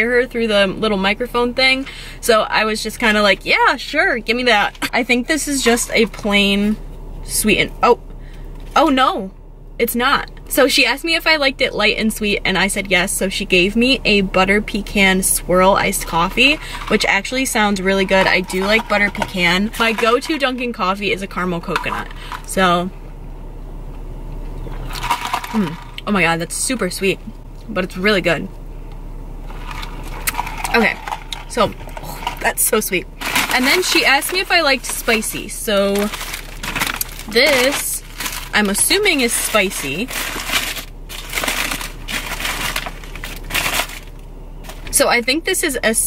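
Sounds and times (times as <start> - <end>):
car engine idling: 0.0 - 46.0
paper wrapper crinkling: 33.2 - 44.9.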